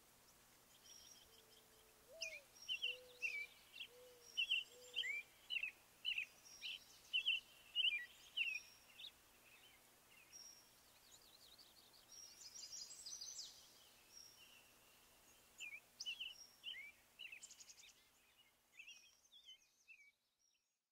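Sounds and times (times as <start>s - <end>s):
background hiss: 0.0s - 20.5s
birds chirping: 0.3s - 20.5s.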